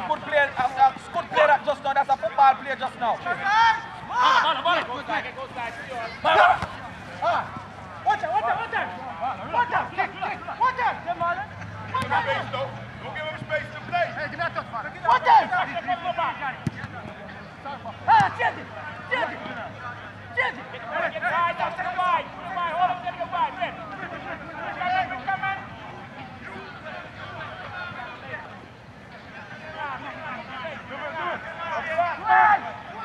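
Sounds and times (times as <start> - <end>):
voices shouting and calling out: 0.0 - 33.0.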